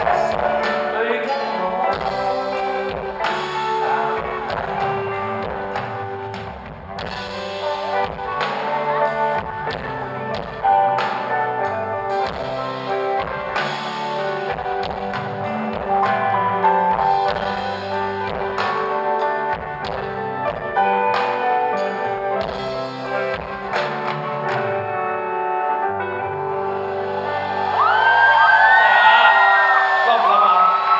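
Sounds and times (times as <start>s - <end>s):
live rock band playing: 0.0s - 30.0s.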